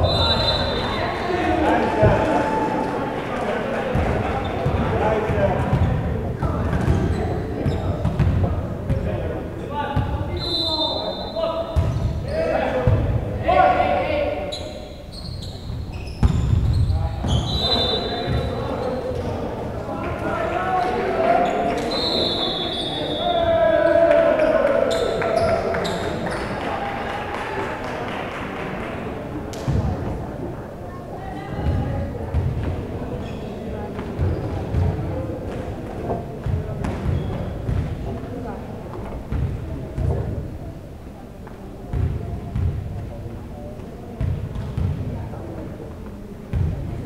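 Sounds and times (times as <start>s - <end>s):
players shouting: 0.0s - 5.4s, 10.4s - 14.5s, 20.0s - 27.8s
spectators' voices echoing: 0.0s - 15.2s, 15.8s - 47.0s
volleyball bouncing on gym floor: 11.8s - 12.2s, 36.4s - 38.0s, 41.9s - 42.8s, 44.2s - 45.1s, 46.5s - 46.8s.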